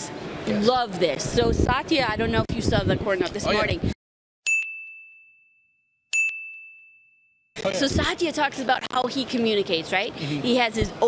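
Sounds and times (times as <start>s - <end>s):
bright chime dings: 4.5s - 7.5s.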